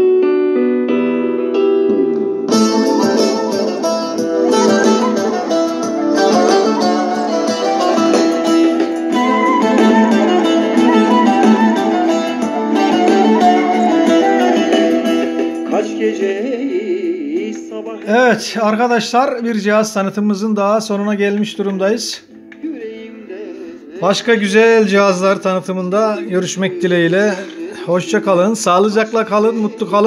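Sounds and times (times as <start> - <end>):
guitar-led music from boombox: 0.0 - 18.6, 20.9 - 30.0.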